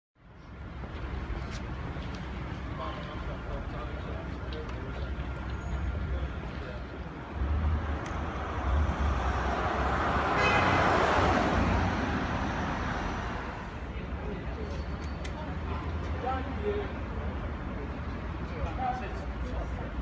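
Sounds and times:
low traffic rumble: 0.2 - 20.0
vehicle passing: 7.2 - 13.9.

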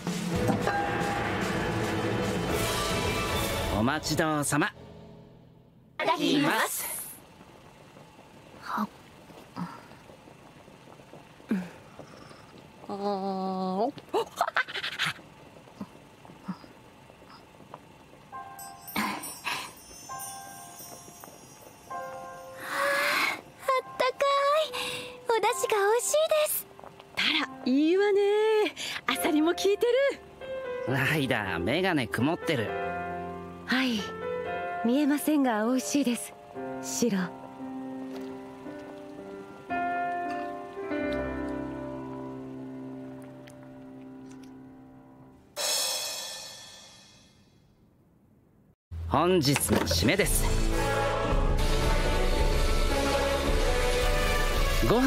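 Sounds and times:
cymbal-like shimmering crash: 0.3 - 4.0, 45.6 - 47.6
girl speaking: 6.0 - 7.2, 23.6 - 26.6
breathy sigh: 9.5 - 10.0, 11.5 - 12.5
soft background music: 17.8 - 45.5, 49.1 - 55.0.

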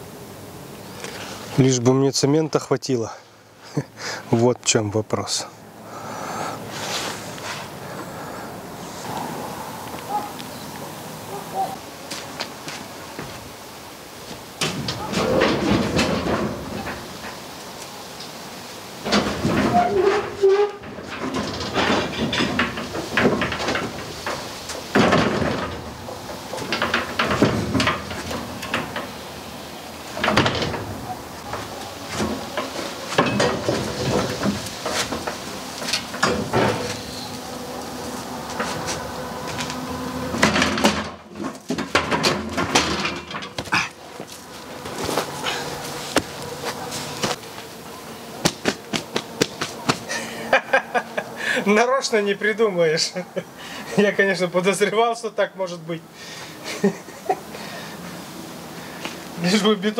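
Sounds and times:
concrete mixer clanking and rattling: 14.6 - 17.4, 19.0 - 29.2, 30.0 - 37.3, 38.5 - 46.4
mixer wheeled over wooden floorboards: 19.0 - 47.6.

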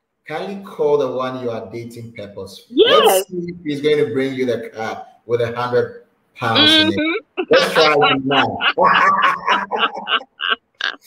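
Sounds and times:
man and woman laughing: 6.6 - 11.0.

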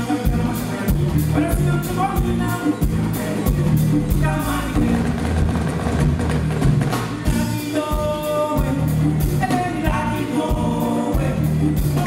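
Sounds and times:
people singing: 0.0 - 5.2, 7.2 - 12.0
bass guitar: 0.0 - 12.0
hand drums: 0.9 - 10.1.

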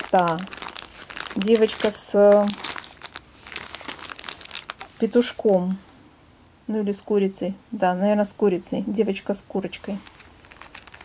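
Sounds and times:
plastic packaging crinkling: 0.0 - 5.6, 9.8 - 11.0.

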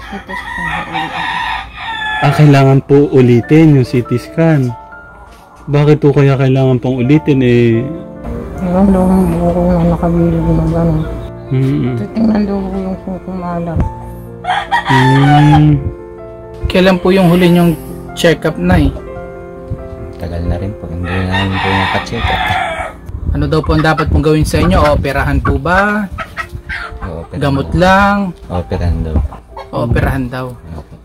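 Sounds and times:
rooster crowing: 0.0 - 2.8, 14.4 - 15.8, 21.0 - 23.0.

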